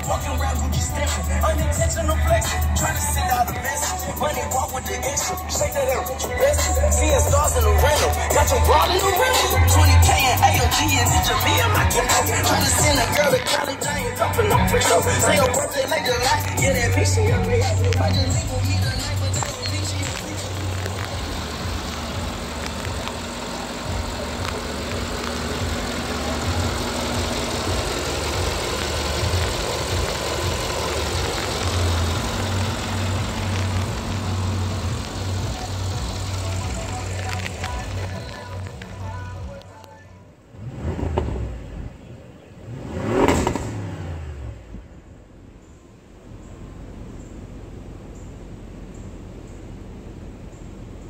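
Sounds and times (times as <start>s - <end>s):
car engine revving: 0.0s - 39.6s, 40.5s - 51.0s
music with pulsing beat: 0.0s - 39.7s.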